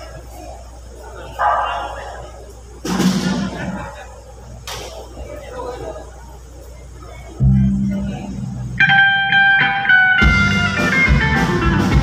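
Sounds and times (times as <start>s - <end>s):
electric guitar notes: 7.4s - 12.0s.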